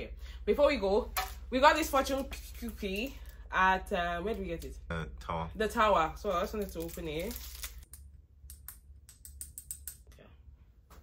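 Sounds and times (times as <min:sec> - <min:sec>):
paper crinkling: 0:06.6 - 0:07.8.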